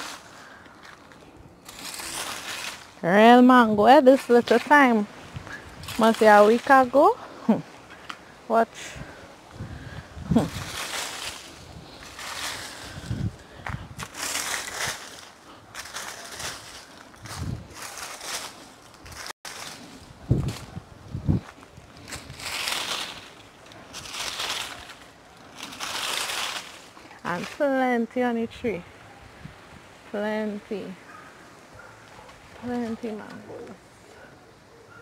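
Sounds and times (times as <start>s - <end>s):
rake scraping through dry leaves: 0.0s - 7.4s, 8.0s - 28.1s.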